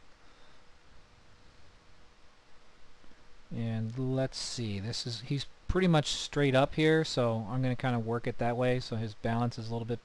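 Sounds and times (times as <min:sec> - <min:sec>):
faint steady hiss: 0:00.0 - 0:10.0
thin steady hum: 0:00.0 - 0:10.0.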